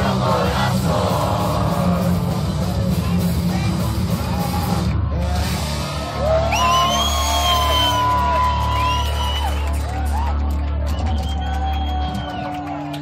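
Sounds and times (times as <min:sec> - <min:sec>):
punk rock band playing: 0:00.0 - 0:09.0.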